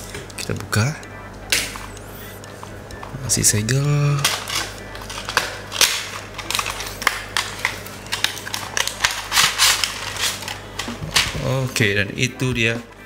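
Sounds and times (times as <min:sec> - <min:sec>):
packaging rustling and crinkling: 0:04.2 - 0:11.7.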